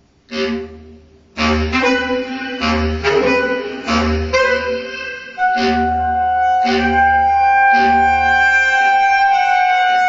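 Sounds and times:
bass clarinet playing low notes: 0.3 - 10.0.

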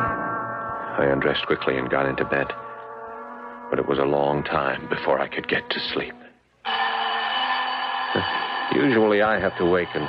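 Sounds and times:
alarm clock ringing: 6.6 - 10.0.

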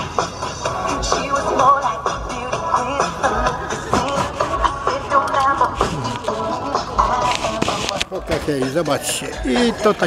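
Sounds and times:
music from a radio: 0.0 - 10.0.

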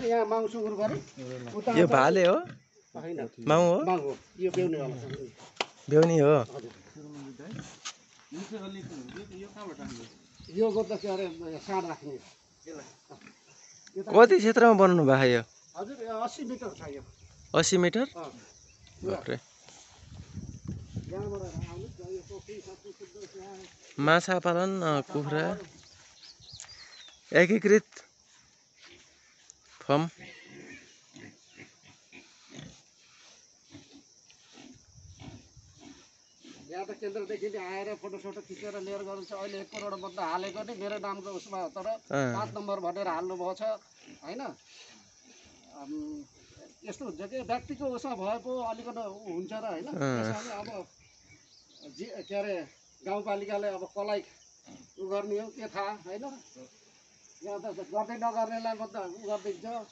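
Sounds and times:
pigs grunting: 8.4 - 10.2, 30.1 - 32.8, 33.6 - 36.8, 39.5 - 41.1, 54.6 - 55.0
person speaking: 21.0 - 25.8, 27.2 - 28.2.

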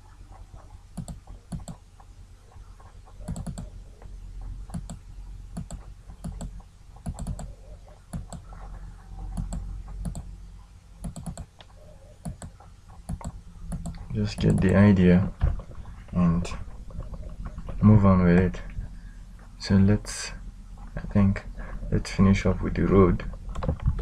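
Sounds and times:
low steady hum: 0.0 - 24.0
computer mouse clicking: 0.9 - 3.8, 4.7 - 8.6, 9.3 - 10.3, 11.0 - 14.8.

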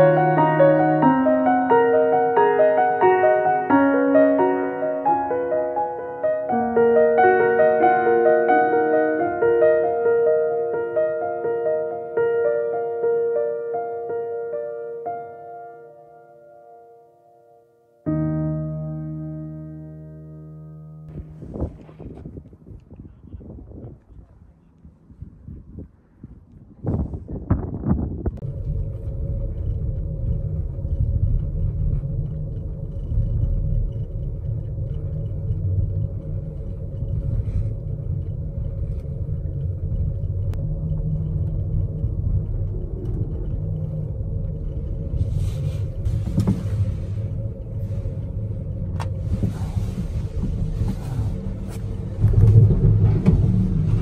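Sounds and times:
gondola cabin rumble and hum: 0.0 - 54.0.

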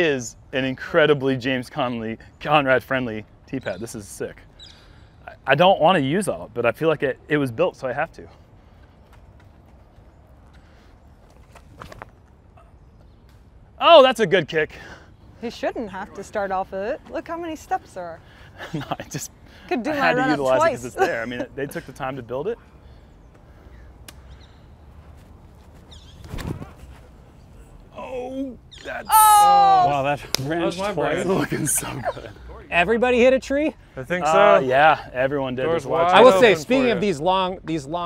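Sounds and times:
running footsteps on tee pad: 8.6 - 12.4, 24.1 - 27.2.

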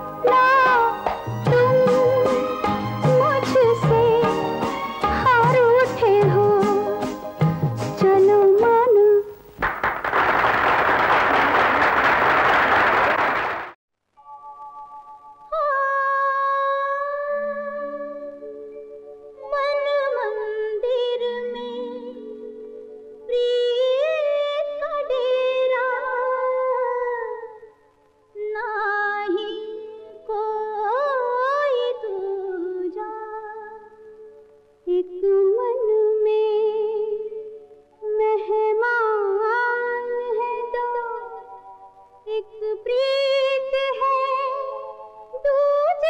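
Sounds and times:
woman singing film song: 0.0 - 9.5, 15.4 - 18.5, 19.4 - 27.7, 28.3 - 41.6, 42.2 - 46.0
crowd applauding: 9.6 - 13.8.

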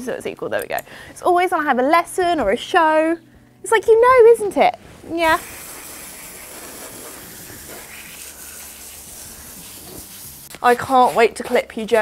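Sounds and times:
hose spraying water: 5.2 - 11.2.

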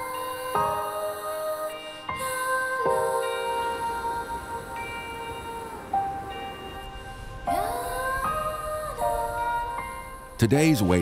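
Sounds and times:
soft background music: 0.0 - 11.0
steady held tones: 0.0 - 11.0.

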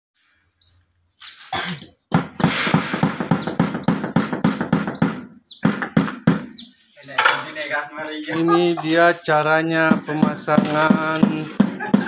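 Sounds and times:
small bird chirping: 0.2 - 11.7
sharp rapid taps: 2.1 - 6.5.

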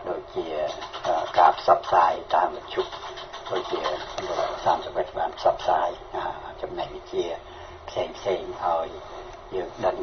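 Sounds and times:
person talking: 0.0 - 10.0.

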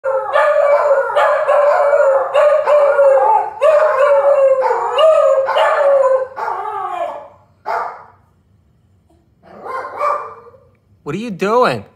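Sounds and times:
dog howling: 0.0 - 8.0.

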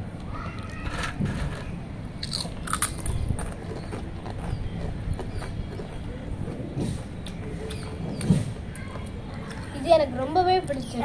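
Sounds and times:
children crunching potato chips: 0.2 - 9.8.

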